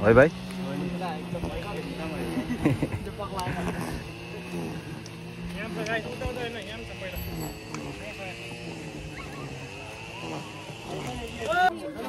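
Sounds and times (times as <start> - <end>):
boys talking in distance: 0.0 - 12.0
high-pitched buzz: 0.0 - 12.0.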